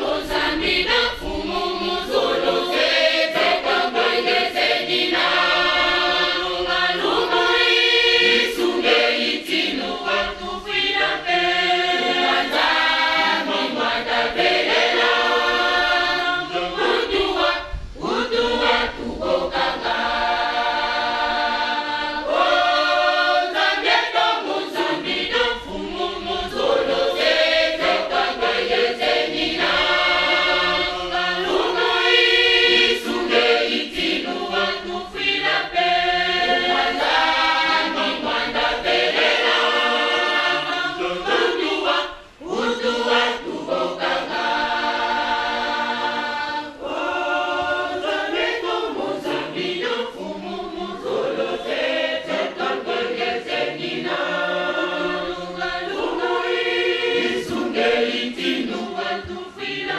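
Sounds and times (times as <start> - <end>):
women's choir singing in harmony: 0.0 - 59.9.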